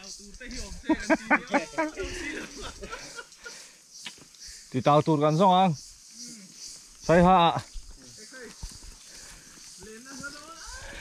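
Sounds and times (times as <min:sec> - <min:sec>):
steady high hiss: 0:00.0 - 0:11.0
footfalls on dry leaves: 0:07.7 - 0:11.0.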